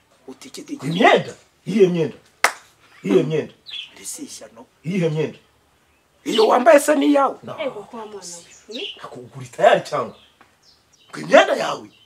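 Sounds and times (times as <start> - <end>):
person speaking emphatically: 0.4 - 2.2, 3.0 - 5.4, 6.2 - 10.2, 11.2 - 11.9.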